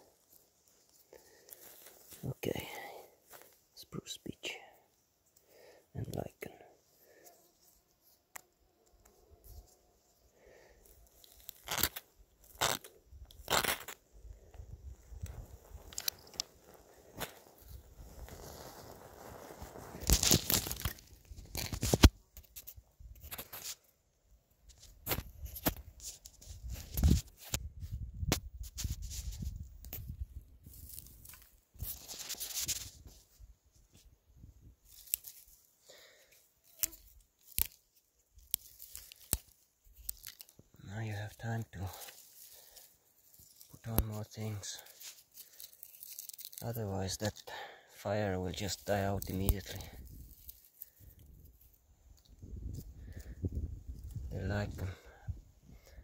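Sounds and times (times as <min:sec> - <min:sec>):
twigs and bark crackling: 0:00.0 - 0:56.0.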